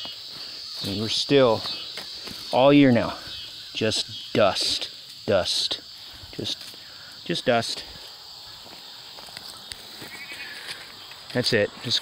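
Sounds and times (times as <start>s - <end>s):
insects chirping: 0.0s - 12.0s
short insect trill: 0.0s - 12.0s.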